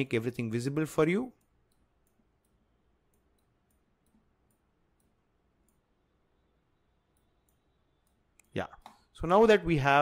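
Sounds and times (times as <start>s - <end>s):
computer mouse clicks: 1.4s - 5.9s, 7.1s - 9.1s.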